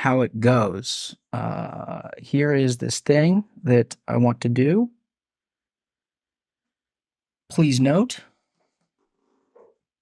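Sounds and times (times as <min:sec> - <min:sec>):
man speaking: 0:00.0 - 0:05.0, 0:07.5 - 0:08.3.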